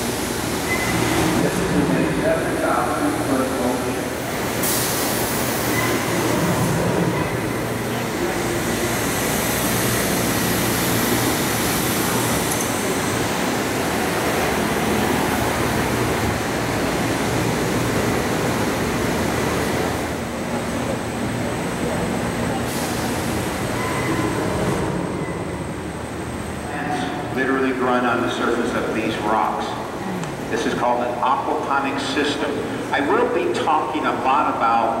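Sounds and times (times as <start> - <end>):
circulation machinery running: 0.0 - 35.0.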